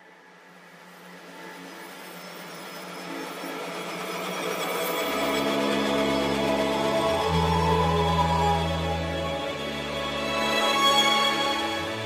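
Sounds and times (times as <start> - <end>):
low sustained tone: 2.9 - 12.0.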